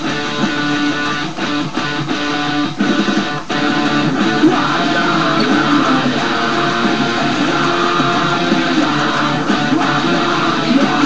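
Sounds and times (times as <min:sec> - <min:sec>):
electric guitar metal riff: 0:00.0 - 0:11.0.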